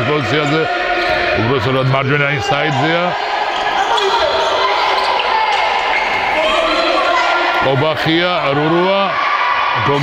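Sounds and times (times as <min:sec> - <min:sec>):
players' voices echoing: 0:00.0 - 0:10.0.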